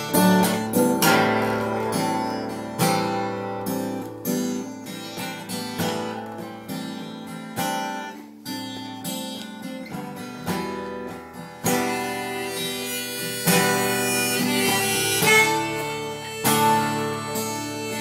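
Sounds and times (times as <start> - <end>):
acoustic guitar strumming: 0.0 - 18.0
harmonica playing: 11.7 - 18.0.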